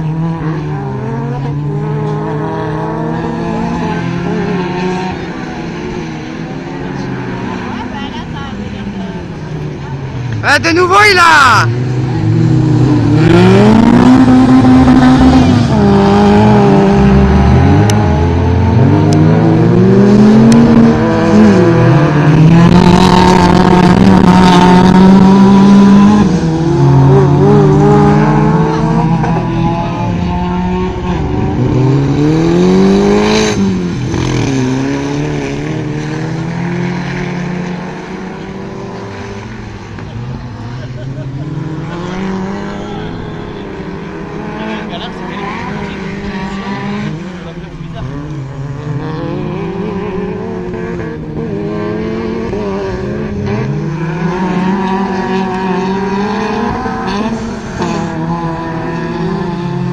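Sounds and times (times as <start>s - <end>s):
car passing close: 0.0s - 59.9s
racing car engines revving: 0.0s - 59.9s.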